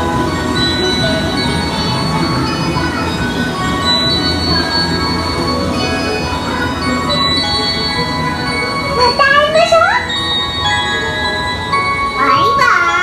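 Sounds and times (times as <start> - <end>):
low rumble of boat ride: 0.0 - 13.0
music with sustained notes: 0.0 - 13.0.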